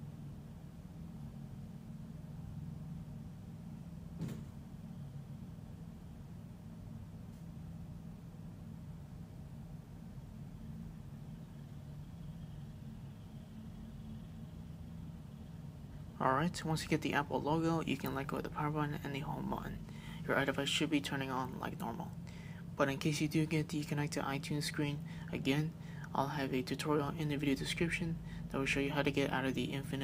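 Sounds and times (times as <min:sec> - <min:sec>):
low background hum: 0:00.0 - 0:30.0.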